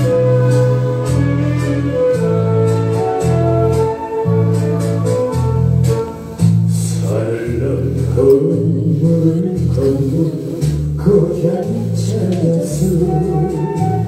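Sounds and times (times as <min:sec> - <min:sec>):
bass line: 0:00.0 - 0:14.0
person singing: 0:06.8 - 0:14.0.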